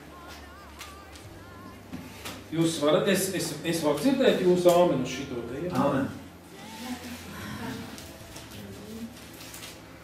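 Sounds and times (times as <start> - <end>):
paper rustling: 6.6 - 10.0.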